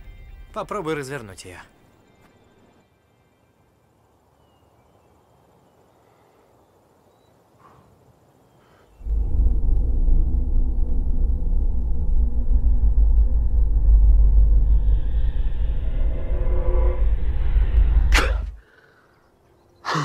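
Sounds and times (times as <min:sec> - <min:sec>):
deep loud rumble effect: 0:09.0 - 0:18.6.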